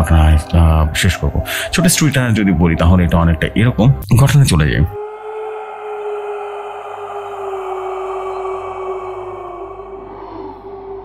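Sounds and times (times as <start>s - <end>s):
ambient music drone: 0.0s - 11.0s.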